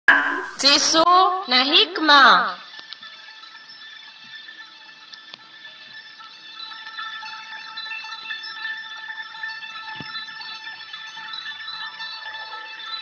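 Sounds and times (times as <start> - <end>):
high tinkling chimes: 0.1 - 13.0.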